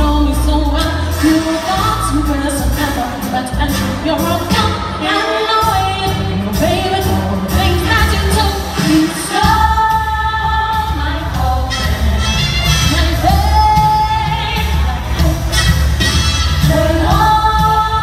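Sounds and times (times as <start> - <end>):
woman singing into a microphone: 0.0 - 15.7, 16.6 - 18.0
amplified backing music: 0.0 - 18.0.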